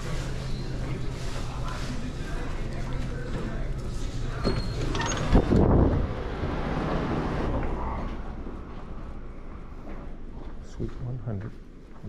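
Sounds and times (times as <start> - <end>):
wind buffeting microphone: 5.4 - 6.4.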